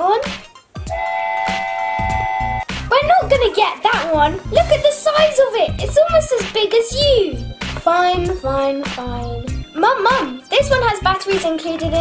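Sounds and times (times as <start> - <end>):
background music with a beat: 0.0 - 12.0
steam train whistle: 0.9 - 2.7.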